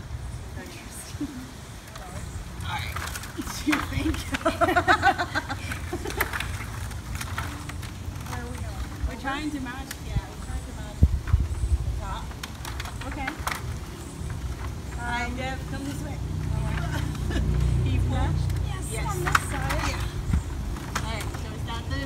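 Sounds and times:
indistinct voices talking: 0.5 - 22.0.

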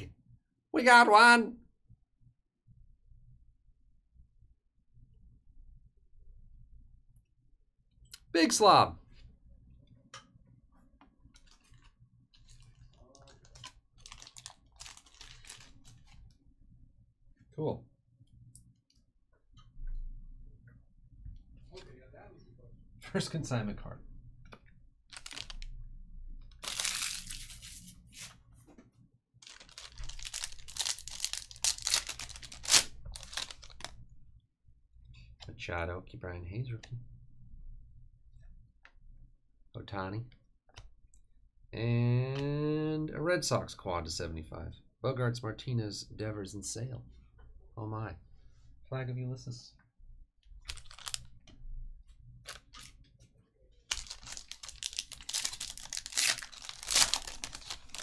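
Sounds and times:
foil wrapper tearing and crinkling: 12.4 - 16.1, 25.1 - 25.7, 26.6 - 27.9, 29.4 - 33.9, 50.7 - 51.3, 53.9 - 58.0.

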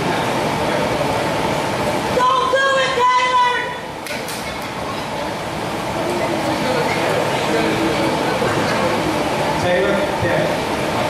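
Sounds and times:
rushing hall background noise: 0.0 - 11.0.

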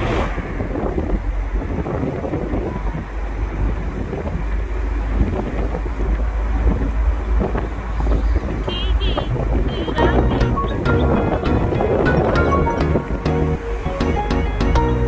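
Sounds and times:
wind buffeting microphone: 0.0 - 13.8
car and road rumble: 0.0 - 15.0.

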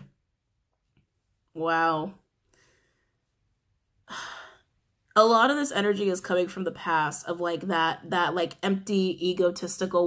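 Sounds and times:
woman sighing: 4.0 - 4.7.

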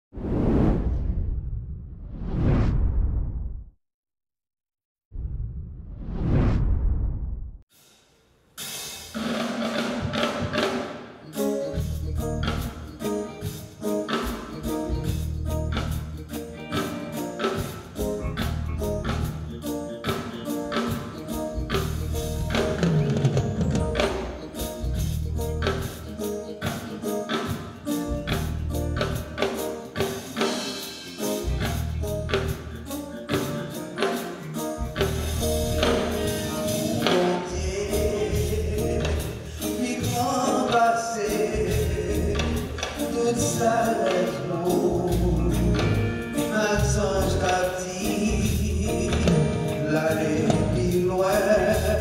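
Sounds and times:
whoosh sound effects: 0.2 - 3.7, 5.2 - 7.6
falling bass line: 5.1 - 7.6, 21.5 - 23.0, 34.8 - 39.4
gospel band playing: 8.6 - 52.0
drum kit hits: 16.7 - 40.5.

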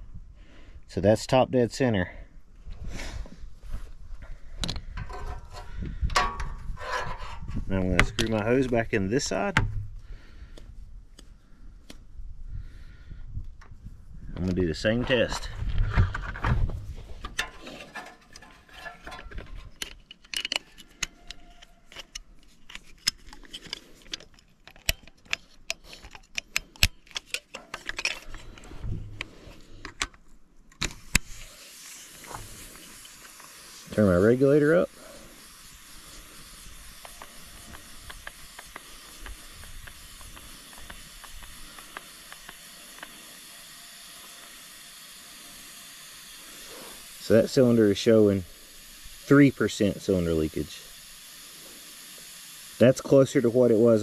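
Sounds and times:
hose fitting handling noises: 2.8 - 12.1, 13.4 - 45.0
metal clicks of hose fittings: 4.2 - 8.8, 17.2 - 31.4
compressed air hissing: 31.0 - 54.0.

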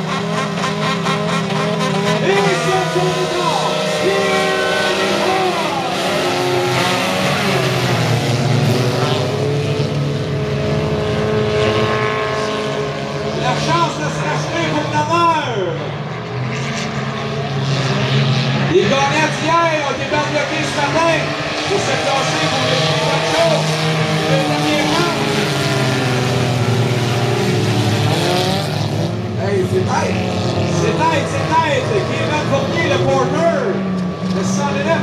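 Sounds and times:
race car engines revving: 0.0 - 35.0.

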